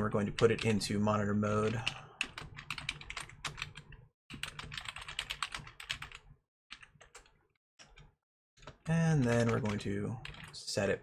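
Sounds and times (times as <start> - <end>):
computer keyboard typing: 1.6 - 10.6.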